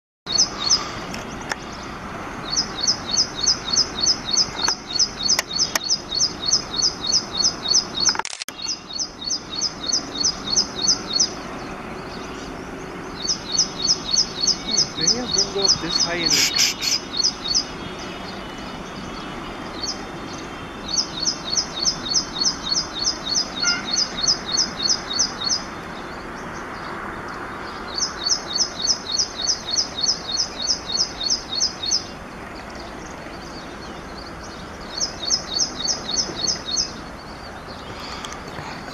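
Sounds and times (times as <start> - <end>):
bird singing sharp repeated notes: 0.3 - 37.9.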